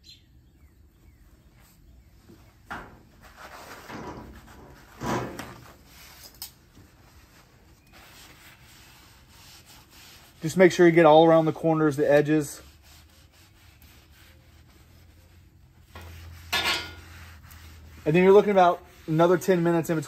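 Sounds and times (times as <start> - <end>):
paper towels rustling: 3.0 - 20.0.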